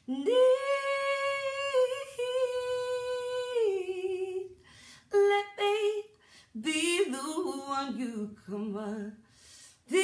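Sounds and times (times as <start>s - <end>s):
woman singing unaccompanied: 0.0s - 9.2s.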